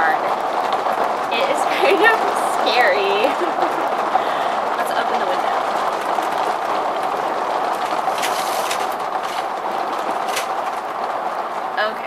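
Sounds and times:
heavy rain on vehicle roof: 0.0s - 12.0s.

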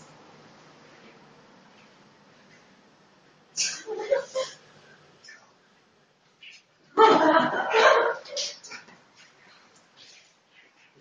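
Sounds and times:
person laughing: 3.6s - 4.6s.

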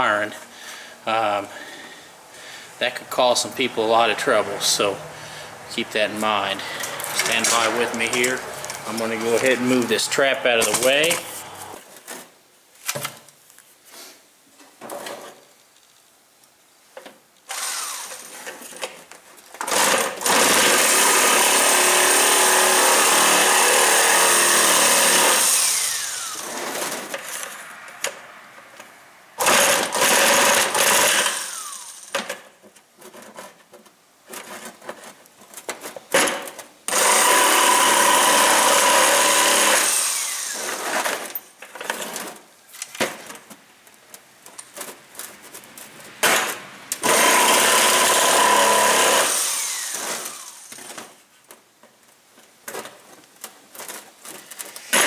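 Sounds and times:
handling noise: 2.8s - 19.8s, 25.6s - 36.9s, 40.0s - 47.3s, 49.6s - 55.0s
jigsaw cutting plastic: 17.5s - 19.0s, 19.6s - 27.6s, 29.4s - 42.5s, 46.2s - 51.2s, 53.7s - 55.0s.

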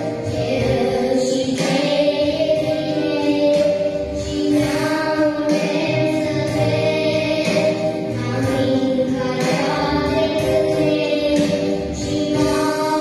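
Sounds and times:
children's choir singing: 0.0s - 13.0s
girl singing into microphone: 0.0s - 13.0s.

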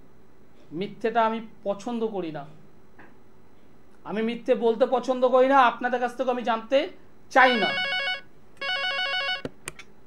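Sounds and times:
electronic telephone ringtone: 7.4s - 9.5s.

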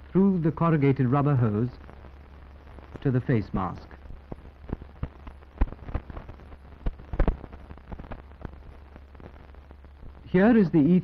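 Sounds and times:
film soundtrack crackle and pops: 0.0s - 11.0s
low steady hum: 0.0s - 11.0s.

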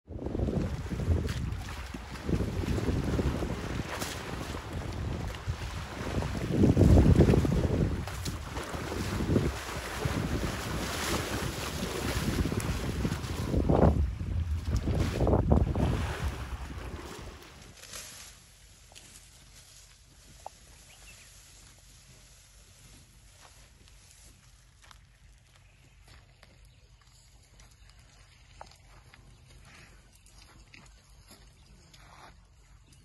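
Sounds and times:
wind buffeting microphone: 0.1s - 17.4s
muddy water sloshing and splashing: 0.1s - 22.5s.

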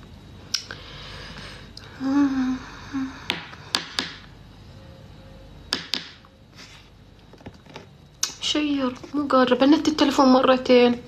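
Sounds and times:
woman humming: 1.8s - 3.6s.

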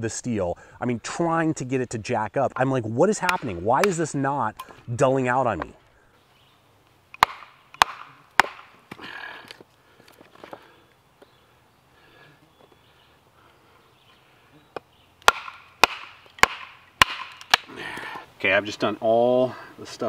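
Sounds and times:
knife chopping into wood: 7.2s - 9.0s, 15.2s - 17.7s.

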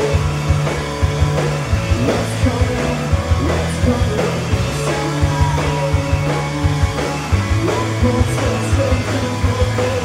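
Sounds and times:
driving drumbeat: 0.0s - 10.0s
held bass notes: 0.0s - 10.0s
live rock band instrumental: 0.0s - 10.0s.

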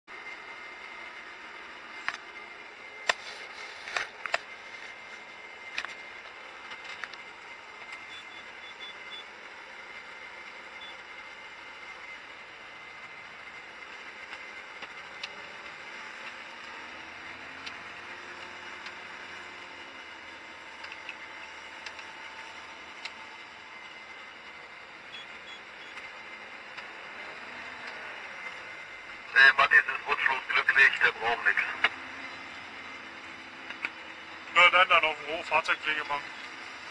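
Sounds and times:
machine running noise in cab: 0.1s - 36.9s
short faint beeps: 25.1s - 25.9s.

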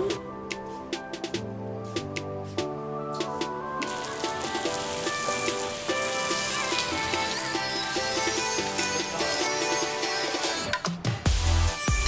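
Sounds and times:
music with steady beat: 0.0s - 12.0s
hose water spraying: 3.8s - 9.4s.

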